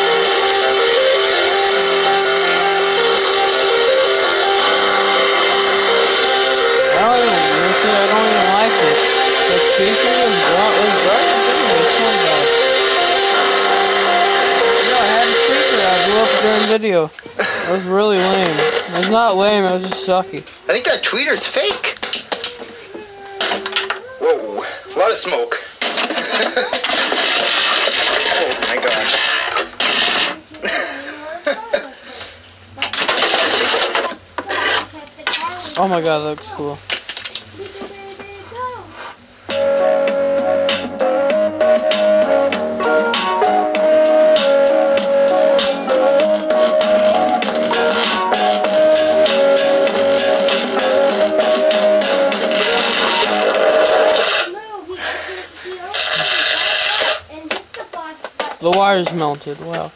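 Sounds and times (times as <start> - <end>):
loud harsh burst: 0.0 - 16.8, 26.8 - 30.4, 39.5 - 54.5, 55.9 - 57.2
distorted guitar music through speaker: 0.0 - 20.1, 39.5 - 54.5.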